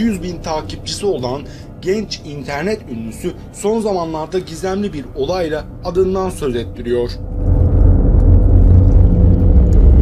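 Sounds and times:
deep rumbling drone: 0.0 - 10.0.

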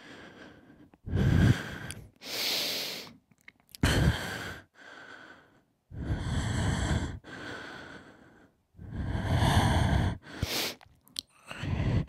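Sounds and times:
soft breath: 0.0 - 3.2, 3.8 - 10.8, 11.4 - 12.0.

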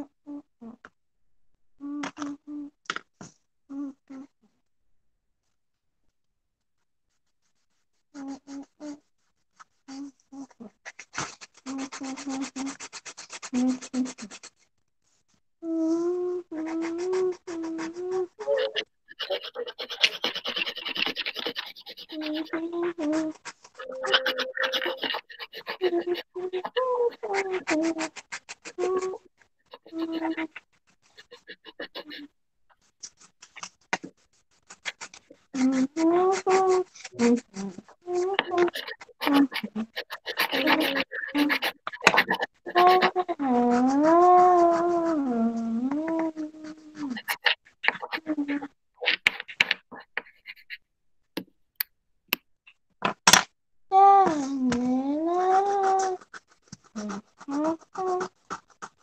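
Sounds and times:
pencil scratching on paper: 10.8 - 14.7, 16.6 - 32.3, 32.9 - 45.3, 46.1 - 50.8, 55.3 - 59.0
child making wordless sounds: 16.3 - 28.1, 28.8 - 30.6, 35.6 - 48.7, 53.9 - 56.2.

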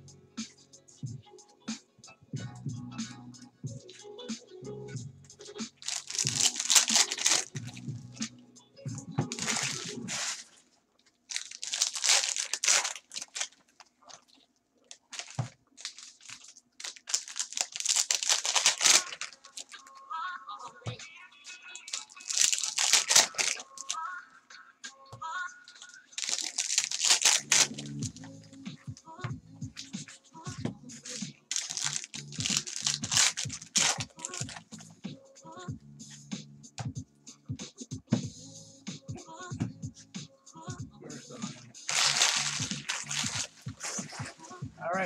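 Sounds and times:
background music: 0.0 - 10.4, 17.2 - 45.0
foil wrappers tearing and crinkling: 5.8 - 7.8, 9.3 - 10.6, 11.2 - 20.0, 21.8 - 24.1, 25.7 - 28.2, 31.0 - 34.6, 41.9 - 44.1.

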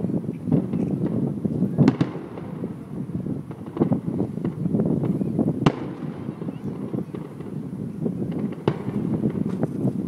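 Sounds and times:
firework crackles: 0.0 - 10.0
firework shells bursting: 0.5 - 10.0
sharp firework bang: 1.8 - 2.8, 3.5 - 7.6, 8.2 - 9.7.

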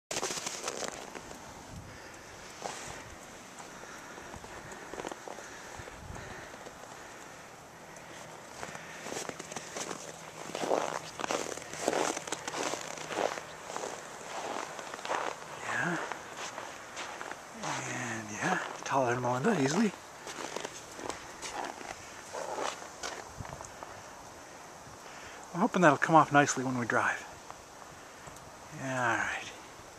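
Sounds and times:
footsteps crunching in snow: 0.1 - 7.4, 8.1 - 23.9.

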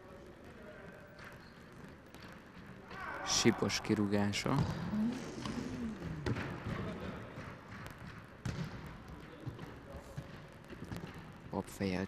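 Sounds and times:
ball kicked and bouncing: 4.4 - 6.9, 7.8 - 11.3.

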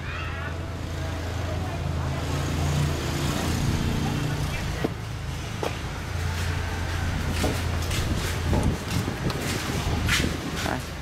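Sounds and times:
vehicle engine passing: 0.5 - 10.9.

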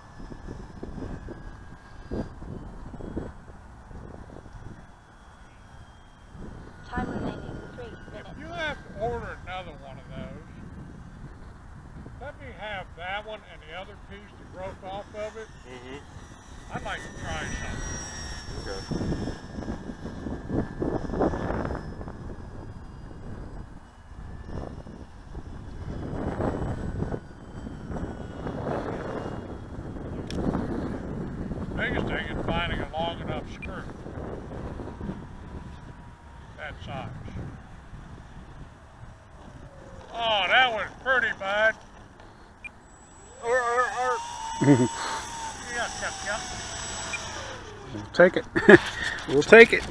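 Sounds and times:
wind rumble on microphone: 0.0 - 41.8
distant model plane motor whine: 0.0 - 49.9.

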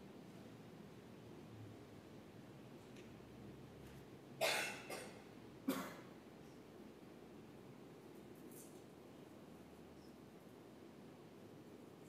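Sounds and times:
person coughing: 4.4 - 6.0.

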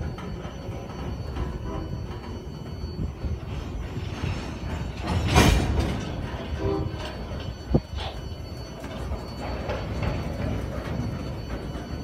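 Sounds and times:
railcar clatter: 0.0 - 12.0
train wheel squeal: 0.0 - 12.0.

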